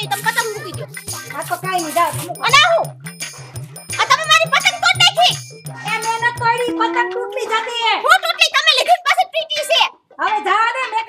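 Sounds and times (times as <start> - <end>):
woman talking: 0.0 - 2.9, 4.0 - 11.0.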